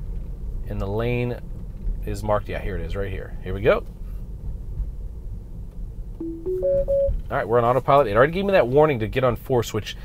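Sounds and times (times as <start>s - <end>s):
tyre and road rumble in car: 0.0s - 6.2s.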